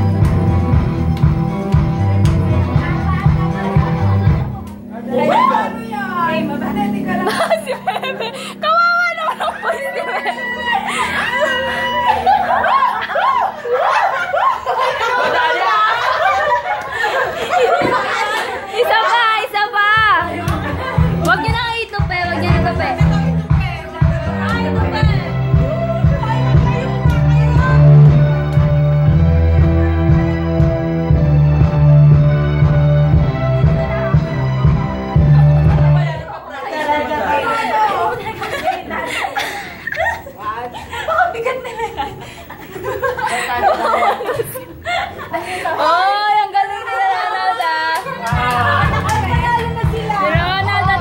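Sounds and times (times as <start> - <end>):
people chattering: 2.1 - 31.0, 33.4 - 51.0
people laughing hard: 2.8 - 5.9, 6.9 - 19.6, 20.2 - 21.6, 33.6 - 51.0.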